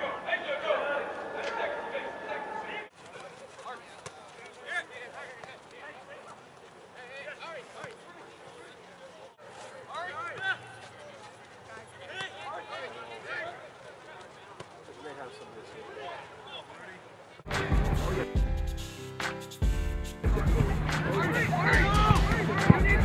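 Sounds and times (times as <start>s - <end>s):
distant shouts of players: 21.0s - 23.0s.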